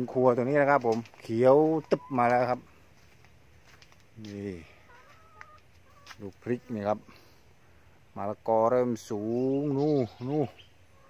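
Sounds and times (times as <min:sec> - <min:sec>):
faint high chirping tones: 0:01.8 - 0:02.7.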